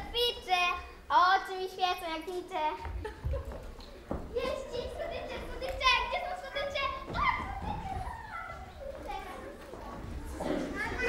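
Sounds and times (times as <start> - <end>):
children calling out: 4.4 - 11.0.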